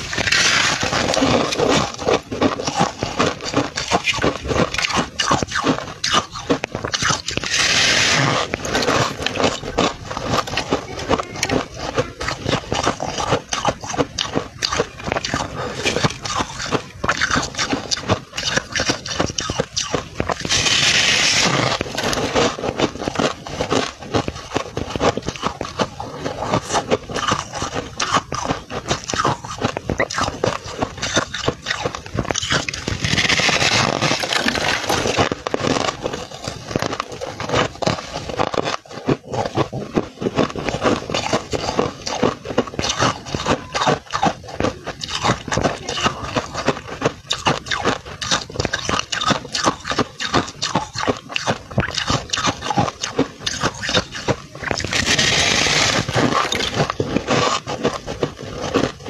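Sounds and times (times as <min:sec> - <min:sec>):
crunching and chewing frost: 0:00.0 - 0:59.0.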